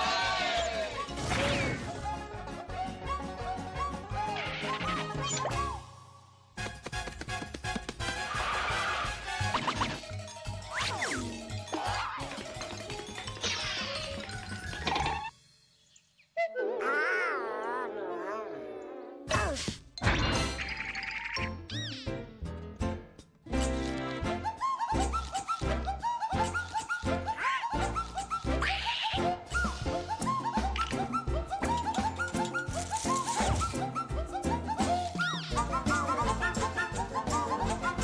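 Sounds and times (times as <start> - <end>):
cartoon background music: 0.0 - 17.1, 19.3 - 38.0.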